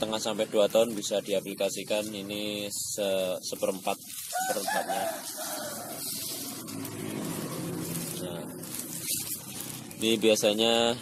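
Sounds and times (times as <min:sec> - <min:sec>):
granules pattering on dry leaves: 0:00.0 - 0:11.0
rooster crowing: 0:04.3 - 0:06.7.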